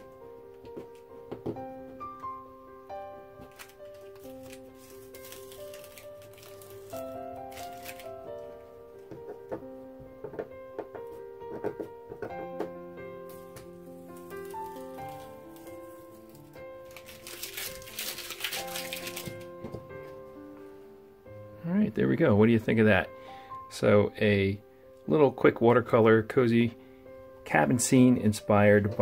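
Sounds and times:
soft background music: 0.0s - 29.0s
masking tape peeling and crinkling: 3.4s - 8.6s, 13.3s - 19.6s.

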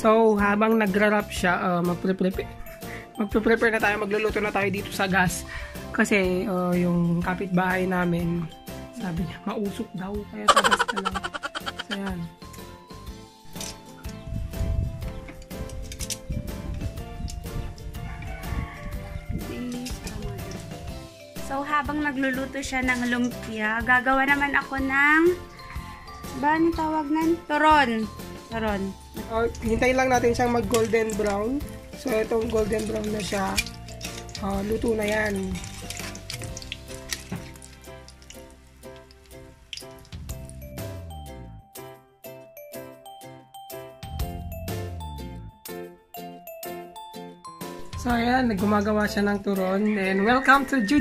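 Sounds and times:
background music sustained notes: 0.0s - 51.0s
music with steady beat: 10.5s - 12.3s, 40.1s - 49.3s
spring rolls sizzling in oil: 30.9s - 40.6s.

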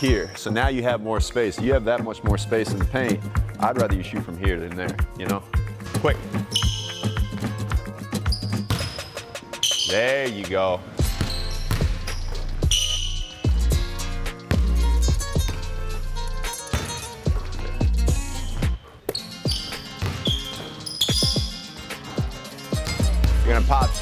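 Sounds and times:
music with heavy bass beat: 11.8s - 18.8s, 21.2s - 24.0s
basketball bouncing on hardwood: 14.5s - 14.8s, 16.7s - 17.4s, 19.1s - 21.5s.

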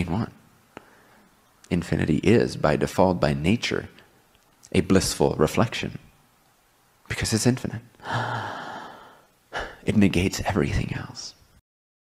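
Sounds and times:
man sighing: 8.0s - 9.8s.

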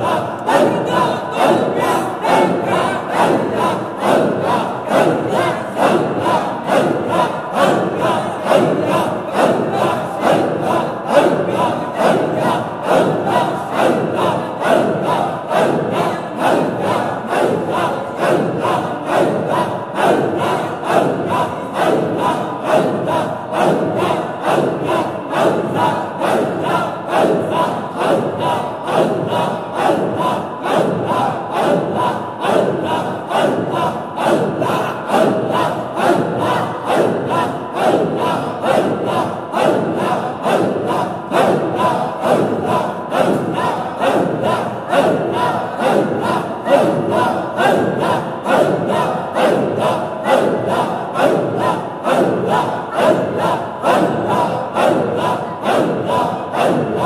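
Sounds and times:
men chanting in unison: 0.0s - 57.0s.

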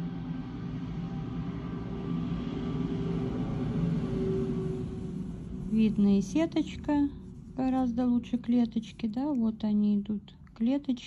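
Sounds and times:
low rumble with droning hum: 0.0s - 11.0s.

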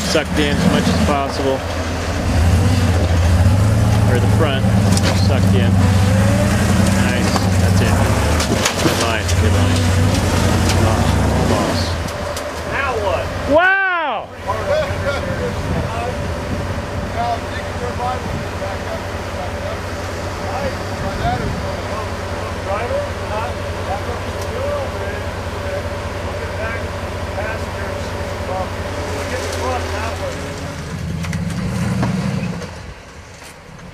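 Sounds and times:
buggy engine running under load: 0.0s - 33.9s.

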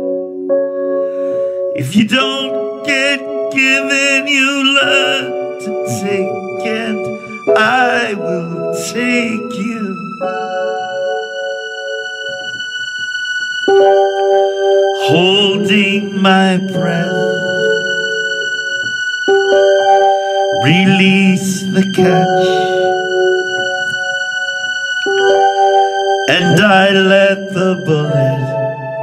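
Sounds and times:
piano-like keyboard chords: 0.0s - 29.0s.

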